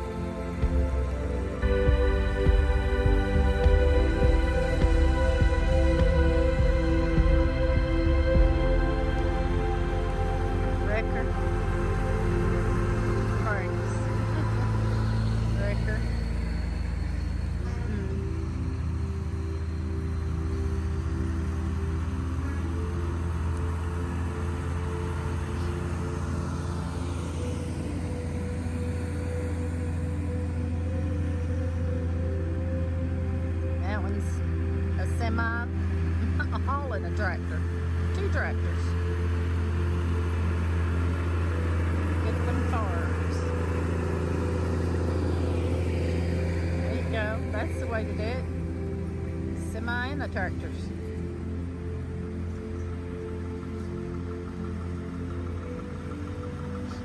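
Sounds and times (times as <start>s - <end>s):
diesel truck engines droning: 0.0s - 57.0s.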